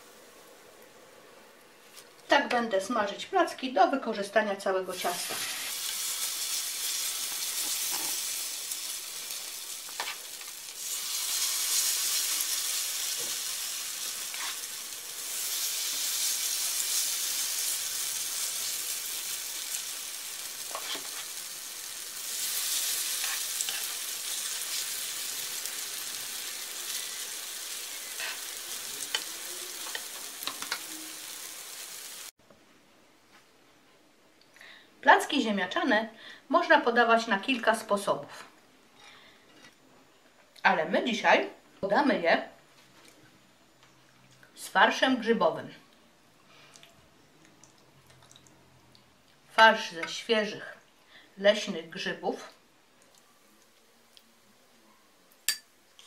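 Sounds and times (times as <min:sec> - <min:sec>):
batter sizzling in hot oil: 0:04.9 - 0:32.4.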